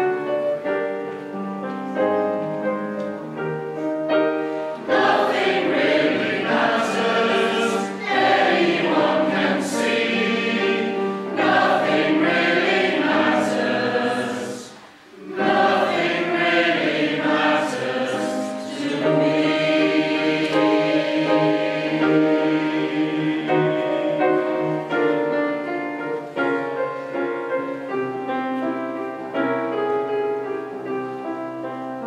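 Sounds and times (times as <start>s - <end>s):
piano: 0.0s - 32.0s
mixed choir singing: 4.8s - 25.3s.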